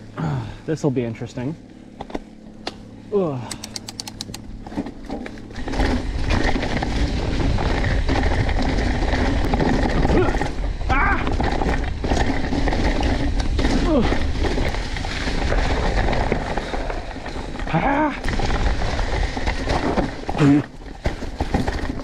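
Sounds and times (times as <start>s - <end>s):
bike tyres rumbling over leaves: 0.0s - 3.5s, 4.5s - 22.0s.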